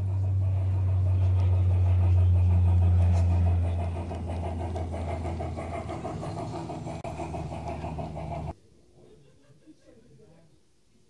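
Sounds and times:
model train motor hum: 0:00.0 - 0:08.5
train clicking on track: 0:00.0 - 0:08.6.

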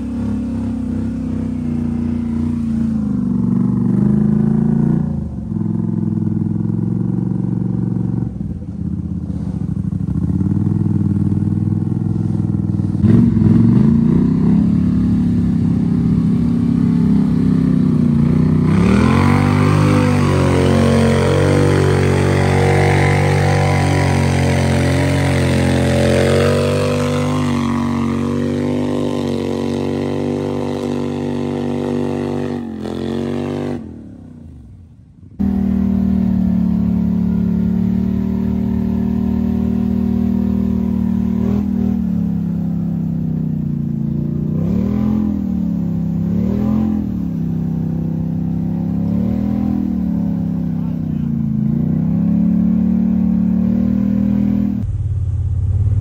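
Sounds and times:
atv engine revving: 0:00.0 - 0:34.8, 0:35.4 - 0:56.0.

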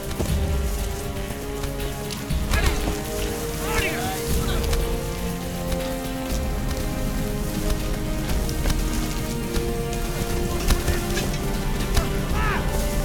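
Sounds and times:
film score of held notes: 0:00.0 - 0:13.0
rain-like hiss: 0:00.0 - 0:13.0.

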